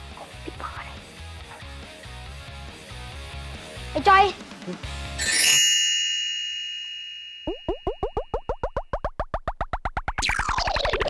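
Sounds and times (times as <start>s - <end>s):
bell-like ding: 5.2s - 8.0s
cartoon bloops falling in pitch: 7.5s - 11.0s.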